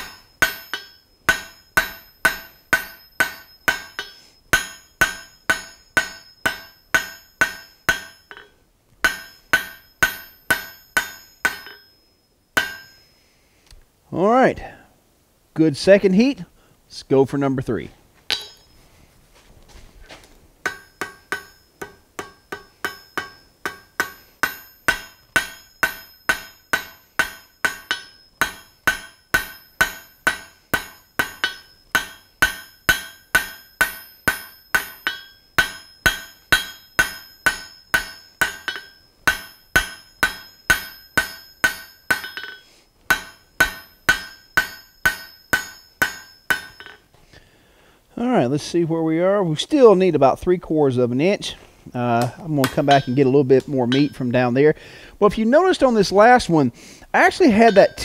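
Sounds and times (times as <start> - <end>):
hammer striking steel on anvil: 0.0 - 13.1, 18.3 - 18.8, 20.6 - 47.1, 52.2 - 54.5, 57.1 - 58.0.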